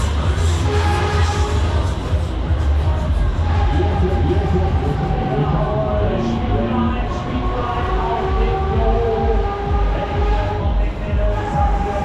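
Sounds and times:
wind and ride rumble: 1.7s - 12.0s
steady held tones: 3.3s - 9.9s.

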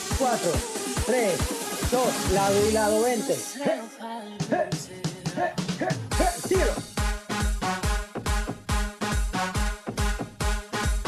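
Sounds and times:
electronic dance music stabs: 0.0s - 11.0s.

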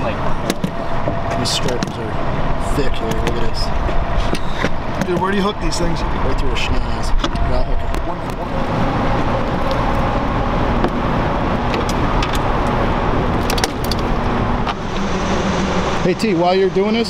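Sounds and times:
boat motor humming: 0.0s - 17.0s.

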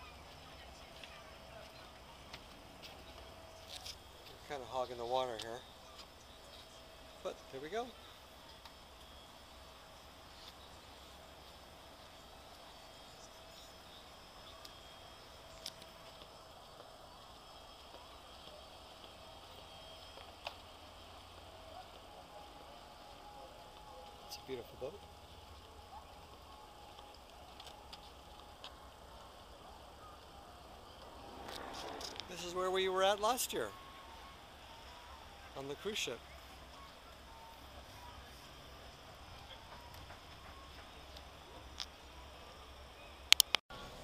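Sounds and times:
distant voices: 0.0s - 44.0s
low steady hum: 0.0s - 44.0s
faint clicks: 43.3s - 43.6s.

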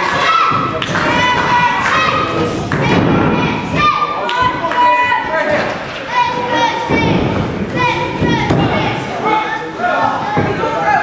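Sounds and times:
shouting voices in large hall: 0.0s - 11.0s.

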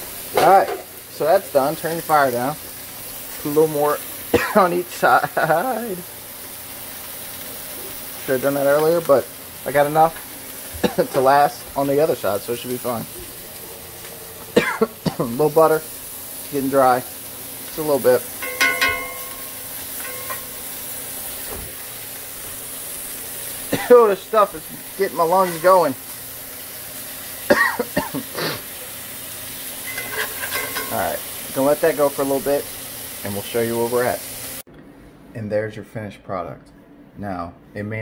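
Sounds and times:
fish sizzling in a skillet: 0.0s - 34.7s.

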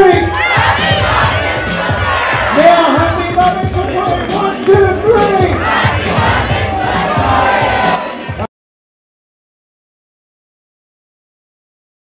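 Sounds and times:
crowd shouting and singing: 0.0s - 8.5s
dance music with steady beat: 0.0s - 8.5s.

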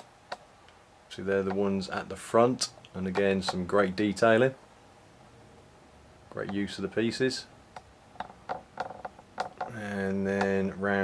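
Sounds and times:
man speaking: 1.1s - 4.6s, 6.3s - 7.5s, 9.7s - 11.0s.

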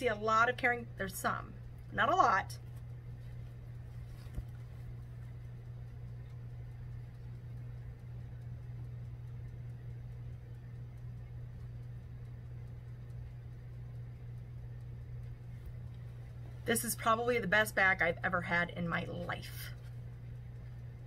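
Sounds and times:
low hum of room tone: 0.0s - 21.0s.

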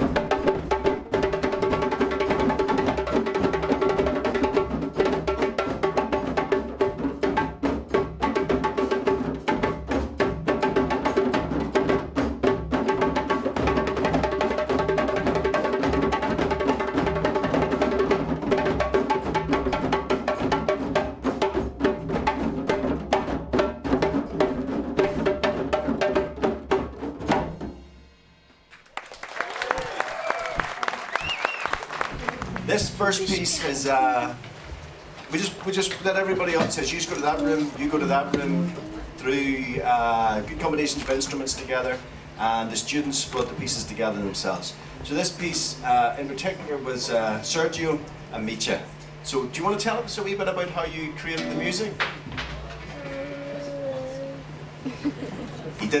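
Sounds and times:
hand drums playing: 0.0s - 28.0s, 32.0s - 55.8s
applause: 28.7s - 32.9s
sustained held notes: 36.1s - 40.6s, 50.9s - 52.0s
murmur of voices: 36.3s - 40.4s.

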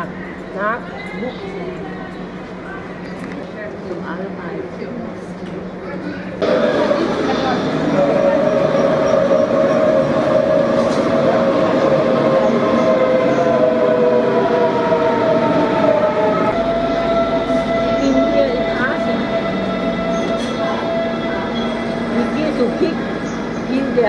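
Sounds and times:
electric train rumble: 0.0s - 24.0s
train whine: 0.0s - 24.0s.

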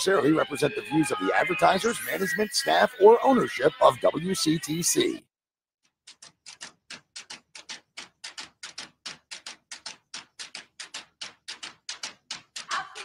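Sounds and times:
clock ticking: 6.0s - 13.0s.

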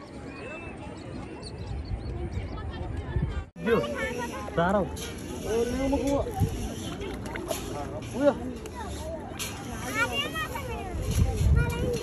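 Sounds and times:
people talking: 0.0s - 12.0s
wind rumble on microphone: 1.5s - 3.5s, 10.6s - 12.0s.

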